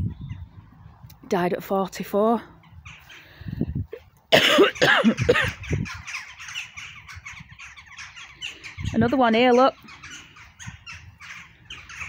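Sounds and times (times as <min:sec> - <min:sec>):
birds chattering faintly: 0:00.0 - 0:12.0
person coughing hard: 0:04.3 - 0:05.6.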